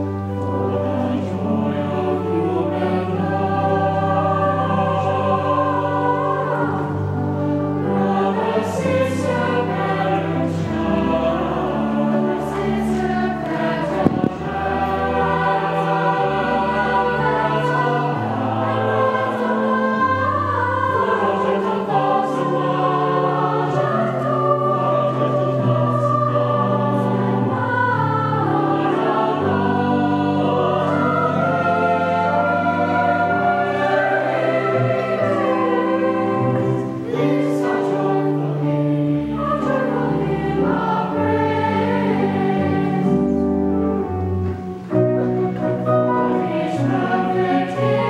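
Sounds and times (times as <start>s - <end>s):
church choir singing: 0.0s - 48.0s
pipe organ: 0.0s - 48.0s.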